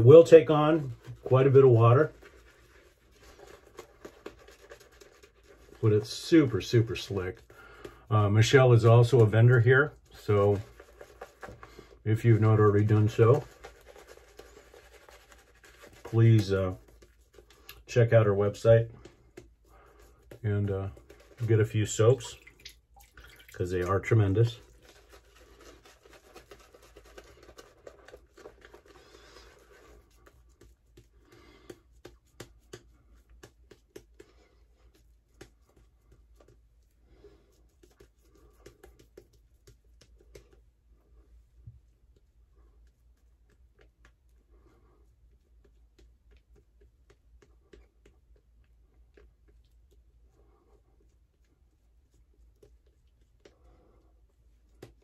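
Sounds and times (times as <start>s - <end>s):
shaving brush scratching skin: 0.0s - 7.5s, 8.2s - 22.4s, 23.6s - 41.3s
shaving brush swishing on face: 8.2s - 22.4s.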